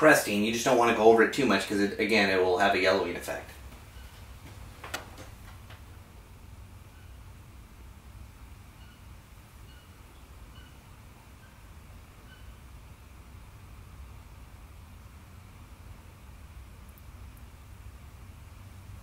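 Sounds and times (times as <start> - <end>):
low hum with faint hiss: 0.0 - 19.0
faint high chirps: 6.9 - 7.4, 8.7 - 12.8.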